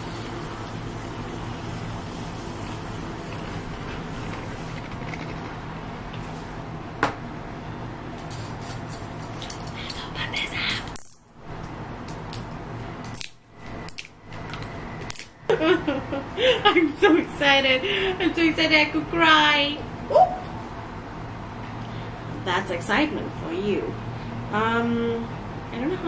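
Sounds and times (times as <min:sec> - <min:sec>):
milk frother whirring: 0:00.0 - 0:05.6.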